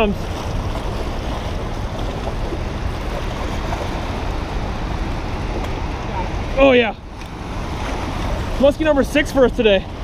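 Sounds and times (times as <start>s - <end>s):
whitewater rushing: 0.0s - 10.0s
wind rumble on microphone: 0.0s - 10.0s.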